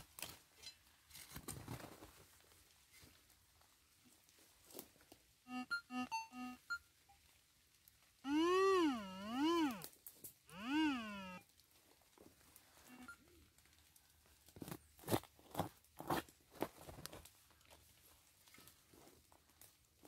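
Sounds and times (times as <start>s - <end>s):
metal detector warbling tone: 5.5s - 6.8s, 8.3s - 9.8s
short electronic beeps: 5.5s - 7.2s, 12.9s - 13.2s.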